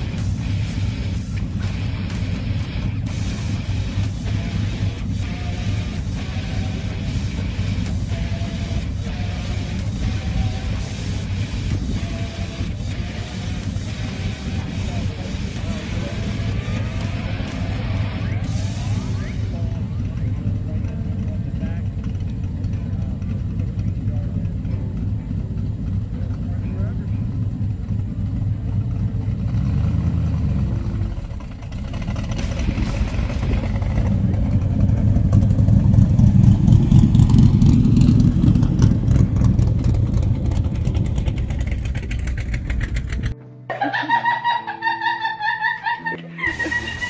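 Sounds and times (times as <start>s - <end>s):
vehicle engine idling: 0.0s - 43.4s.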